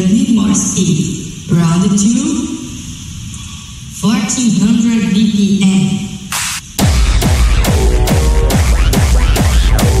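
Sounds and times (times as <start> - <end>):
high hiss: 0.0 - 10.0.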